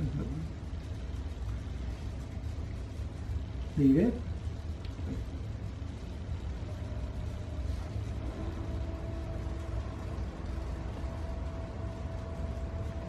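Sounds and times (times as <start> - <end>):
faint steady hum: 0.0 - 13.0
low rumble: 0.0 - 13.0.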